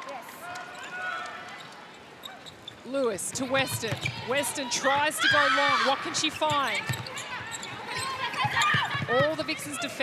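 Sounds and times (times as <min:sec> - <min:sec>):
arena background noise: 0:00.0 - 0:10.0
shoe squeaks on wooden floor: 0:01.6 - 0:04.3, 0:06.1 - 0:09.0.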